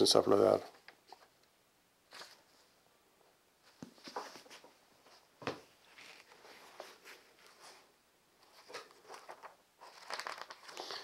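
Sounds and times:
paper rustling and crinkling: 2.1 - 2.6, 3.7 - 4.7, 5.4 - 11.0.

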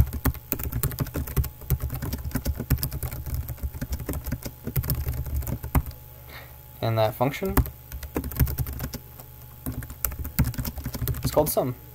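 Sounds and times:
low steady hum: 0.0 - 11.9
keyboard typing clicks: 7.6 - 9.0.

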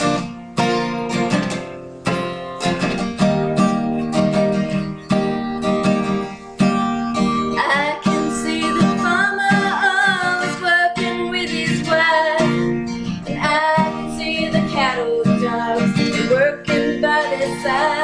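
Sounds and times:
acoustic guitar strumming: 0.0 - 18.0
woman singing: 7.5 - 18.0.

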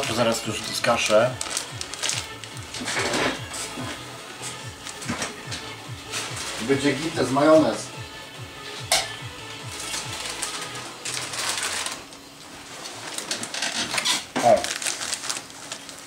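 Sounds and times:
crisp packet crinkling: 0.0 - 3.4, 9.7 - 16.0
faint background music: 0.0 - 16.0.

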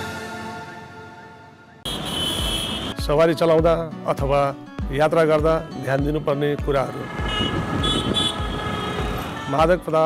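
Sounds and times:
city street traffic: 1.7 - 3.2, 5.8 - 10.0.

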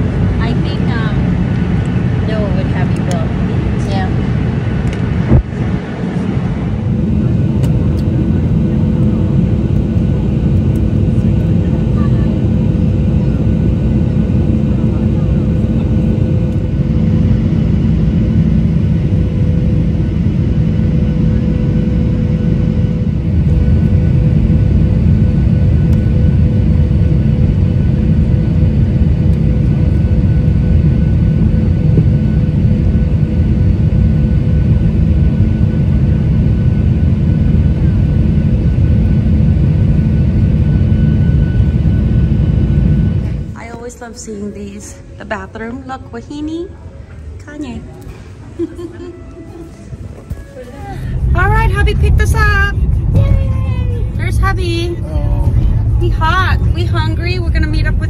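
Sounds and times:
jet engine cabin rumble: 0.0 - 58.0.

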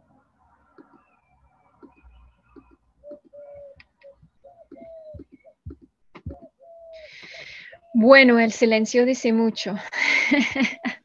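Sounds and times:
pigeon cooing: 3.0 - 8.0.

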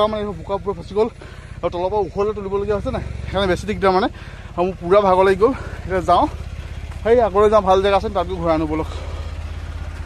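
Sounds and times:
low pulsing rumble: 0.0 - 10.0.

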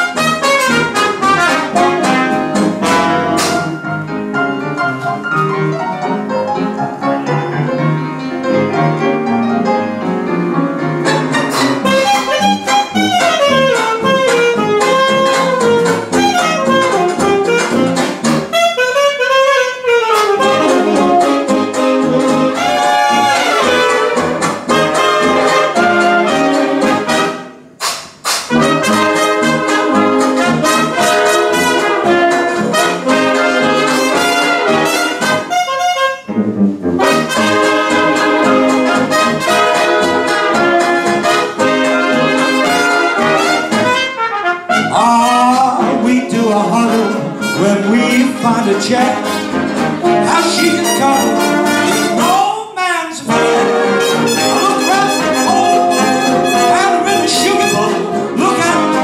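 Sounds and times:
traditional jazz band playing: 0.0 - 52.5, 53.2 - 59.0.

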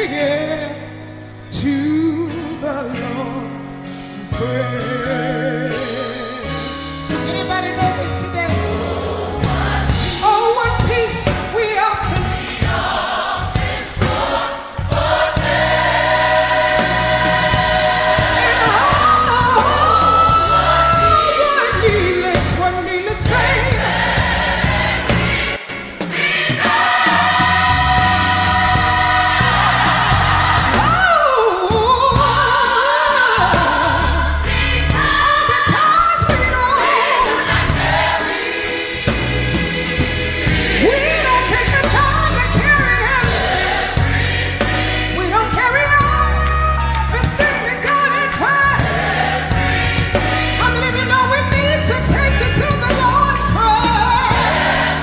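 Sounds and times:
choir singing gospel song: 0.0 - 55.0
instrumental accompaniment: 0.0 - 55.0.

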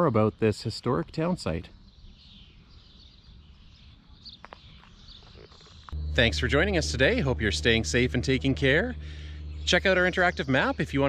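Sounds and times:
distant birds chirping: 1.7 - 11.0
steady low rumble: 5.9 - 11.0.

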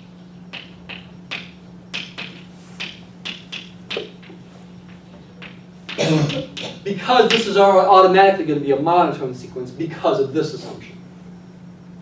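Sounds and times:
steady low hum: 0.0 - 12.0
chalk tapping on blackboard: 0.5 - 7.5.

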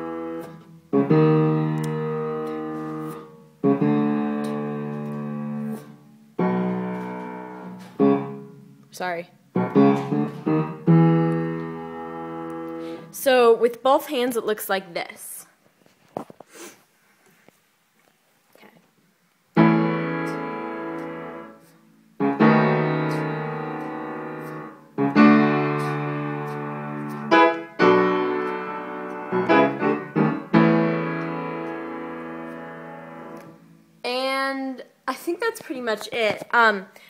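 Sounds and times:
upright piano chords: 0.0 - 13.2, 19.5 - 34.0.

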